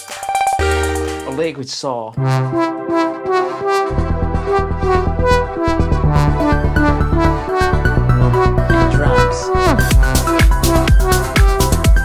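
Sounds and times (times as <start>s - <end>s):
synthesizer melodic sequence: 0.5s - 12.0s
pulsing low bass: 2.2s - 12.0s.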